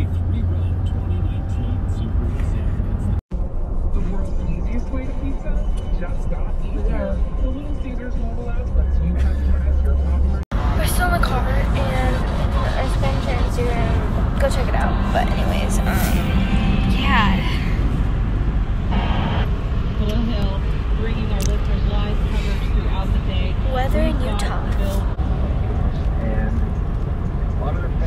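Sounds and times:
voices: 0:00.0 - 0:02.8, 0:04.0 - 0:17.8, 0:20.0 - 0:25.2, 0:25.9 - 0:28.0
car cabin road rumble: 0:00.0 - 0:28.0.

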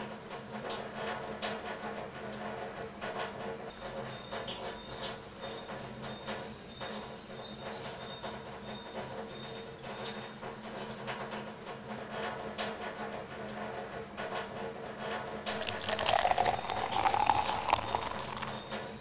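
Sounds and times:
tap water running into sink: 0:15.5 - 0:18.7
water pouring into glass: 0:15.5 - 0:19.0.

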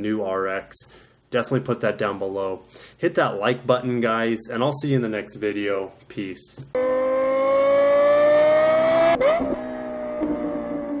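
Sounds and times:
car engine revving: 0:06.8 - 0:11.0.

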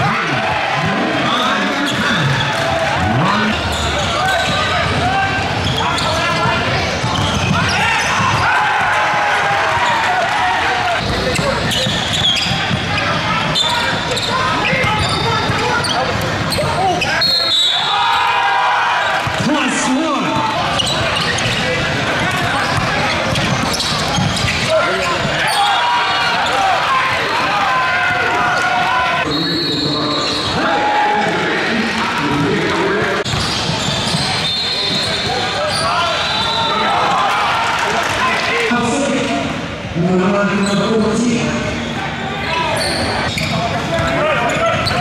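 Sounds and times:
basketball bouncing on wooden court: 0:05.7 - 0:09.9, 0:20.3 - 0:25.4.

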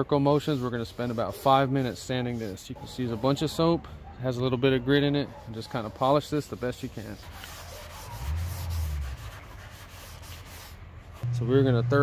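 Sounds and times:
scrub pad rubbing wet plastic: 0:05.4 - 0:11.2
low hum: 0:11.2 - 0:12.0.

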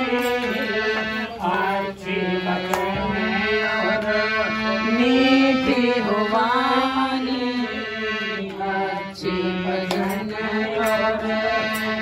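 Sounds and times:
elderly man singing devotional song: 0:00.0 - 0:12.0
harmonium sustained notes: 0:00.0 - 0:12.0
hand claps: 0:02.6 - 0:03.0, 0:09.8 - 0:11.1.

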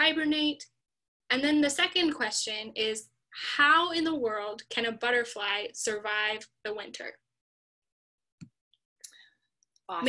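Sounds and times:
woman speaking: 0:01.3 - 0:07.2.

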